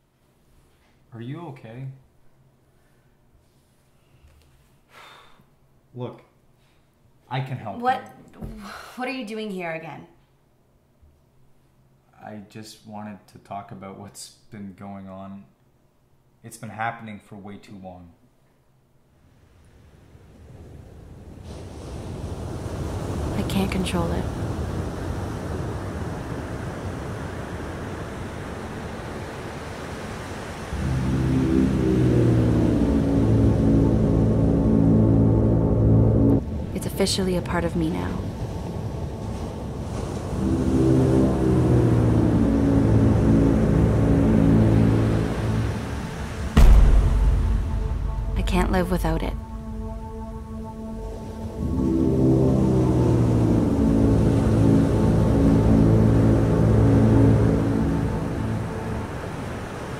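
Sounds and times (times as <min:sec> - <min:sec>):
surf on a shore: 0:19.3 - 0:59.9
low drone of held tones: 0:30.7 - 0:59.9
loud low boom: 0:30.8 - 0:37.0, 0:38.4 - 0:59.0.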